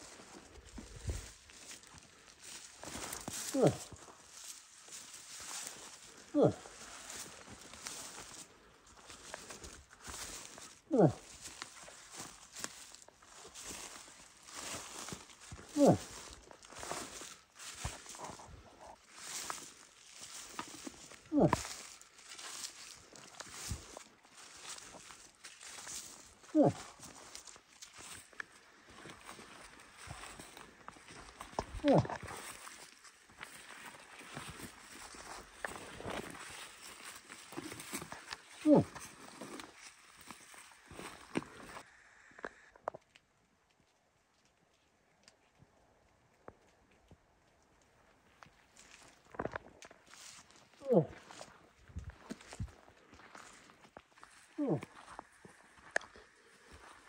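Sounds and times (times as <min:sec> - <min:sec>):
footsteps crunching on dirt road: 0:00.0 - 0:43.2, 0:46.5 - 0:57.0.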